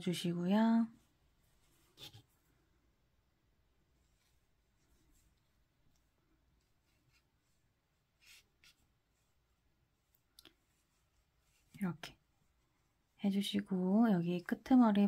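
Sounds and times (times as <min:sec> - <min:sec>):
hands rustling yarn: 0:00.0 - 0:15.0.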